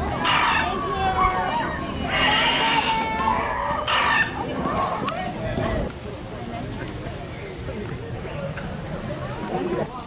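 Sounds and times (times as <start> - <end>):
crowd voices: 0.0 - 10.0
squawking bird-like calls: 2.0 - 3.0, 3.6 - 4.4.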